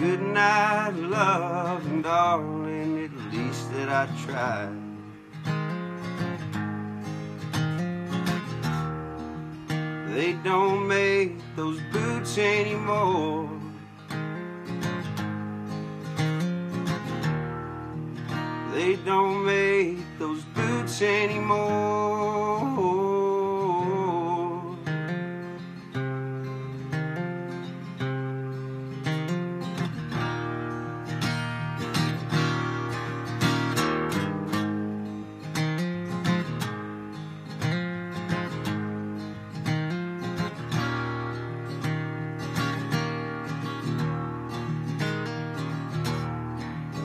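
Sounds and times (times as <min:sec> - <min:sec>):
acoustic guitar strummed and picked: 0:00.0 - 0:47.0.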